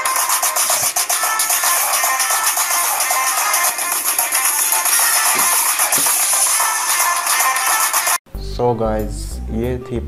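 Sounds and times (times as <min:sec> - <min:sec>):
song on tiny tinny speaker: 0:00.0 - 0:08.2.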